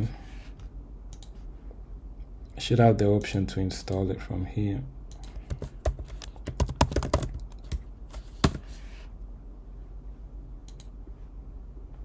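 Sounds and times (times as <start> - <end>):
keyboard keys clicking: 5.1 - 7.8.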